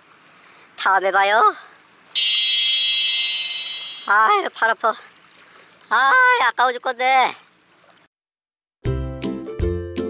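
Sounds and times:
high electronic beep: 2.2 - 4.2.

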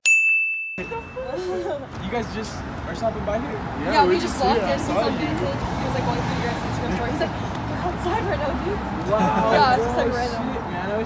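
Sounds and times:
bell-like ding chime: 0.0 - 1.3
chatting voices: 0.8 - 11.0.

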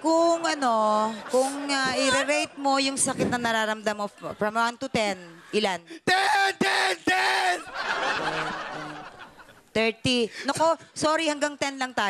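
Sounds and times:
studio audience laughing: 0.6 - 5.8, 7.4 - 9.8.

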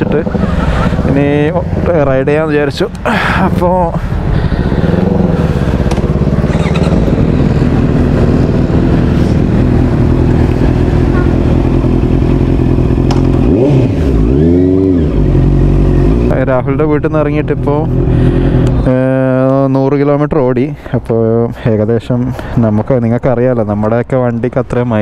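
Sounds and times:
motorcycle engine running: 0.0 - 19.9.

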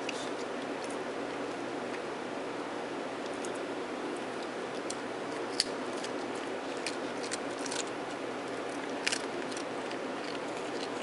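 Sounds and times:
steady background hiss: 0.0 - 11.0
dog teeth clicking on biscuit: 4.4 - 11.0.

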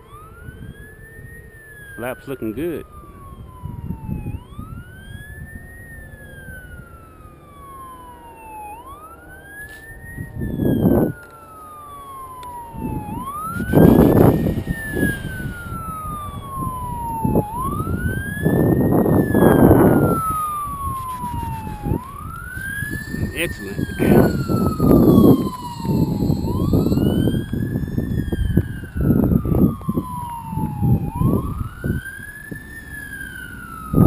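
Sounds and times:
emergency siren wailing: 0.0 - 34.0
rumbling noise: 12.7 - 32.6.

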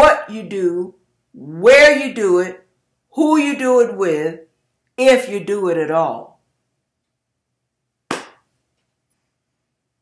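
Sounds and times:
short sharp smack: 8.1 - 8.5.

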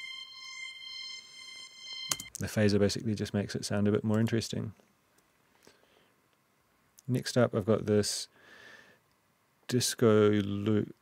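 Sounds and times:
synth strings holding high note: 0.0 - 2.4.

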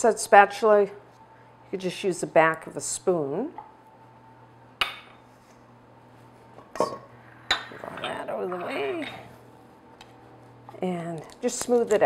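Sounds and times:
utensils and metal bowl clinking: 6.8 - 9.3.

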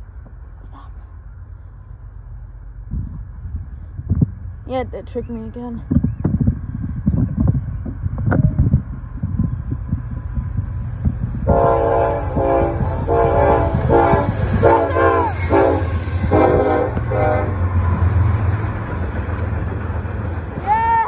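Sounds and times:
diesel engines and wheels rumbling: 0.0 - 21.0
locomotive horn blasts: 11.4 - 17.8.

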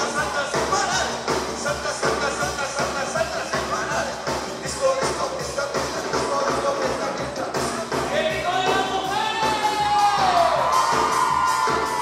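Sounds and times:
live dance music: 0.0 - 12.0
crowd cheering: 9.1 - 12.0.

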